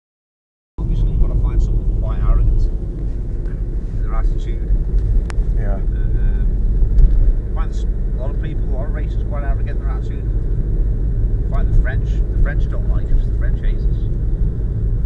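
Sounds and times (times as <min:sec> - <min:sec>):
car cabin rumble: 0:00.8 - 0:15.0
indistinct talk: 0:05.6 - 0:06.5.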